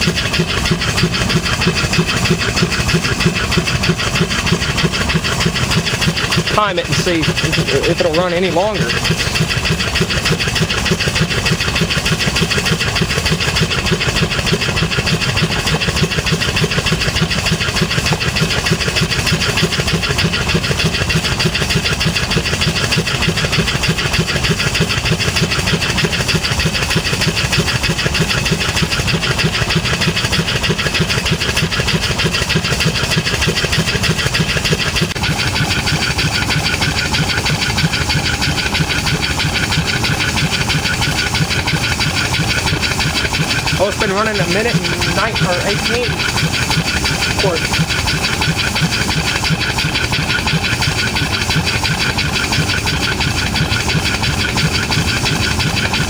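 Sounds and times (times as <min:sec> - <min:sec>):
steam engine exhaust chuffs: 0:00.0 - 0:56.0.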